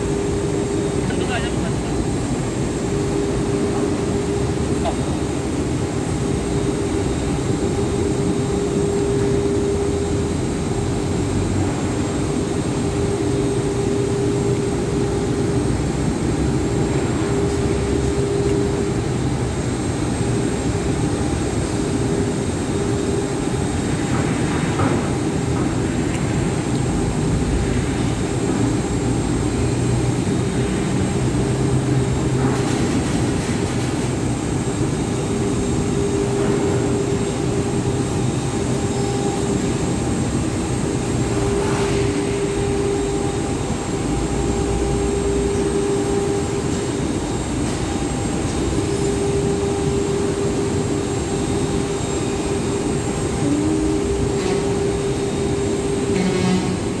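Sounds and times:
heavy industrial machinery running: 0.0 - 57.0
intermittent humming tone: 0.0 - 57.0.

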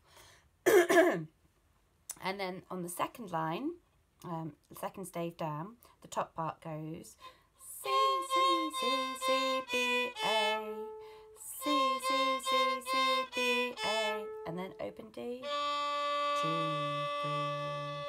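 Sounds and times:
solo violin: 7.2 - 18.0
woman counting: 13.7 - 15.5, 16.4 - 18.0.

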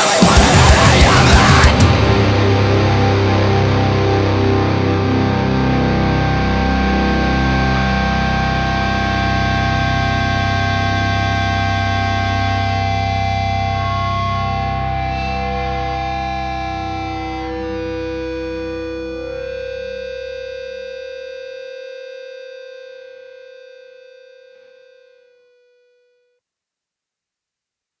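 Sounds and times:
distorted electric guitar chord ringing: 0.0 - 26.2.

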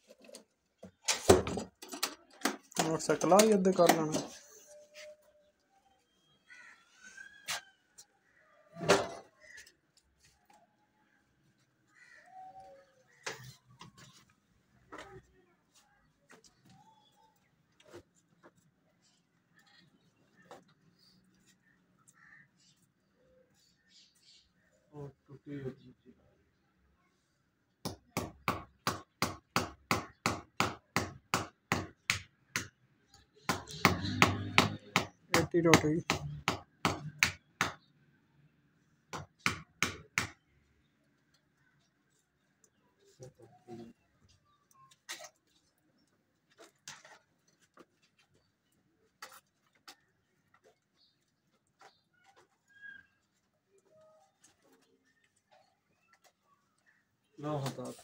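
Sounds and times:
faint bird calls: 11.9 - 13.8, 51.8 - 57.4
hammer striking plaster wall: 33.5 - 37.8.

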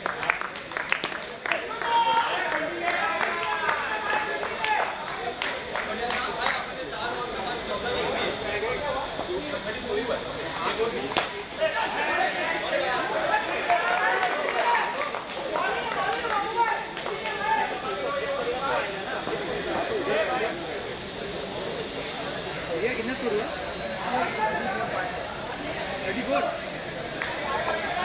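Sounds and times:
voices talking and calling out: 0.8 - 28.0.

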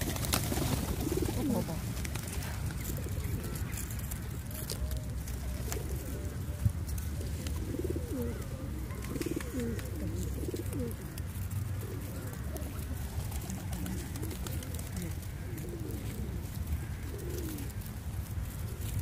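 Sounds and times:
pigeons cooing: 0.0 - 19.0.

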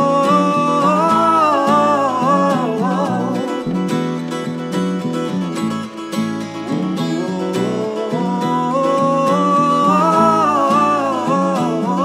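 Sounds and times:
voices singing in harmony: 0.0 - 4.2, 7.1 - 12.0
acoustic guitars strumming: 0.0 - 12.0.

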